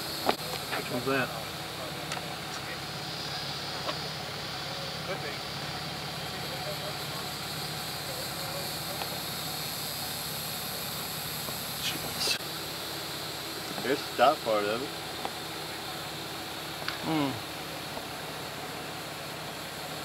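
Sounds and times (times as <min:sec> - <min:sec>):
vehicle engine idling: 0:00.0 - 0:20.0
faint voices: 0:00.3 - 0:10.1, 0:16.9 - 0:18.5.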